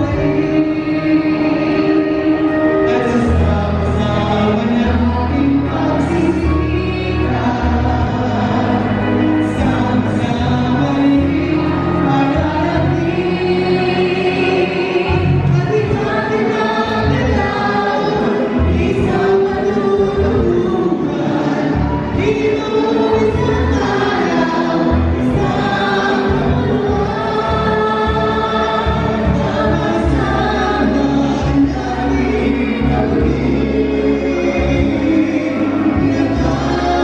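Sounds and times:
group singing into microphones: 0.0s - 37.0s
steady bass notes: 0.0s - 37.0s.

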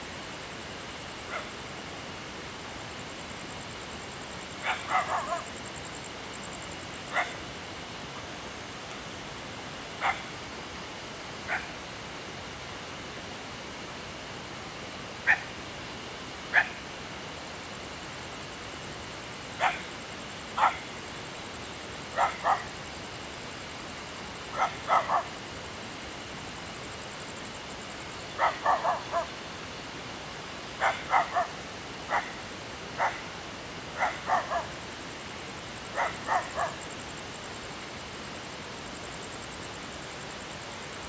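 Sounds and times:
steady background hiss: 0.0s - 41.0s
dog barking: 1.3s - 1.5s, 4.6s - 5.5s, 7.1s - 7.4s, 10.0s - 10.3s, 11.5s - 11.7s, 15.3s - 15.5s, 16.5s - 16.8s, 19.6s - 19.8s, 20.6s - 20.8s, 22.2s - 22.7s, 24.6s - 25.3s, 28.4s - 29.3s, 30.8s - 31.5s, 33.0s - 33.2s, 34.0s - 34.7s, 36.0s - 36.8s.

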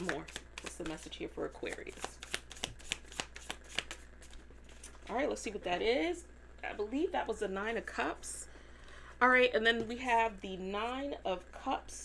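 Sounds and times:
cards being shuffled: 0.0s - 5.1s.

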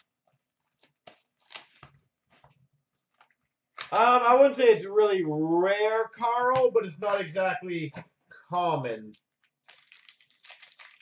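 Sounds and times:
foil wrapper crinkling: 0.0s - 2.1s, 9.1s - 11.0s.

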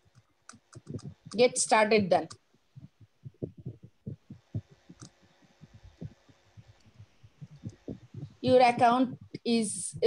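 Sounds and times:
faint steady hum: 0.0s - 10.0s
typing on computer keyboard: 0.1s - 1.4s.

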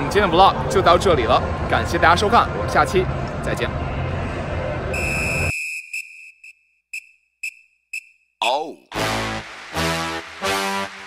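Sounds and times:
high whistle tone with echoes: 4.9s - 8.3s.

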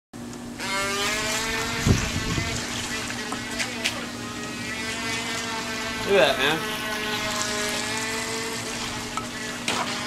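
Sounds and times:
small electric motor whining: 0.6s - 10.0s.

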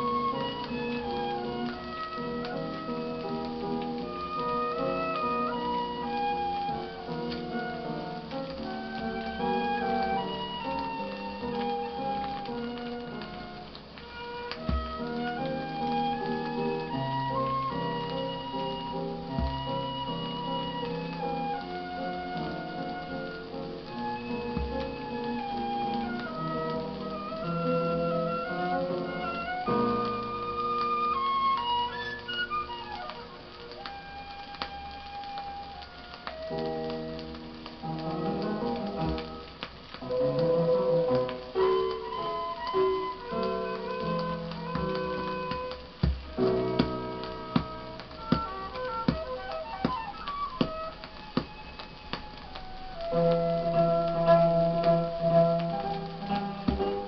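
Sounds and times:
flute playing slow melody: 0.0s - 57.0s
piano accompaniment: 0.0s - 57.0s
record surface noise: 0.0s - 57.0s.

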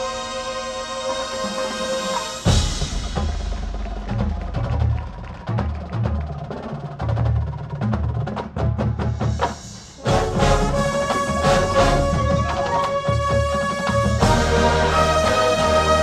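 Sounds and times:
brass sustained chords: 0.0s - 3.0s, 10.0s - 16.0s.

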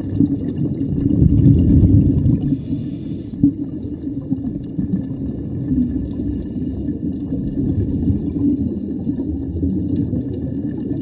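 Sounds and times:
underwater regulator bubbles: 0.0s - 11.0s.

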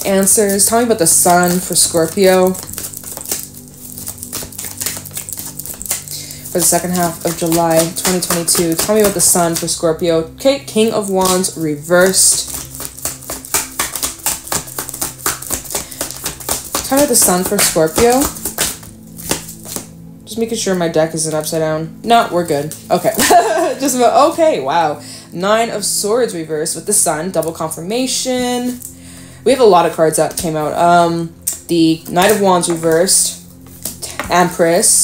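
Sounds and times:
cards being shuffled: 0.0s - 9.8s, 10.8s - 19.9s, 32.0s - 34.4s
quiet background music: 0.0s - 35.0s.

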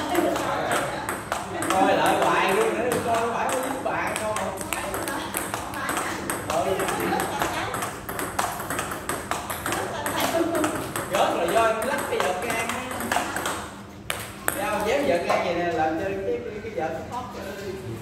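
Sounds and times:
table tennis ball clicking: 0.1s - 14.9s.

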